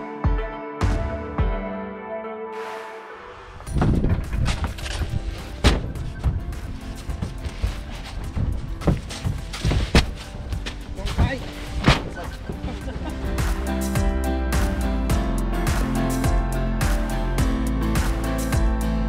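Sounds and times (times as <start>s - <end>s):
heavy sacks thudding onto truck bed: 3.8s - 6.4s, 7.1s - 13.2s.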